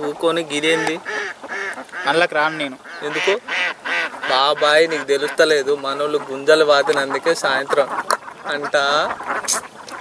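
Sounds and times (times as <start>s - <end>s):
man talking: 0.0s - 1.1s, 2.0s - 3.5s, 4.2s - 9.2s.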